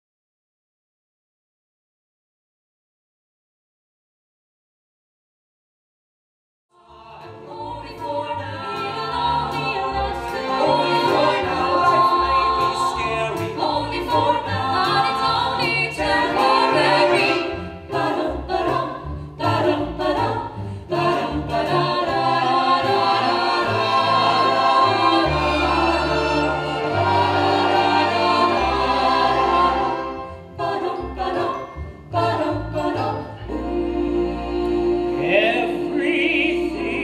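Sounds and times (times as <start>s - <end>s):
choir singing: 6.8s - 37.0s
instrumental accompaniment: 7.1s - 37.0s.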